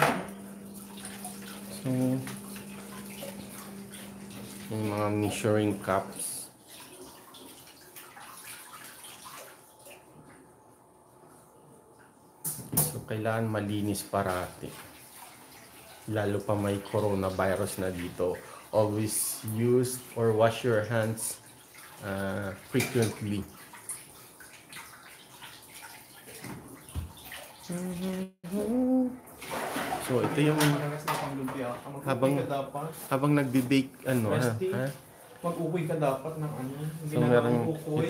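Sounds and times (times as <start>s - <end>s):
tap running into sink: 0.0s - 0.4s, 26.4s - 27.2s
tap water running into sink: 0.0s - 10.3s, 14.1s - 28.2s
measuring cups being washed: 0.0s - 10.6s, 12.1s - 28.3s, 29.2s - 36.3s.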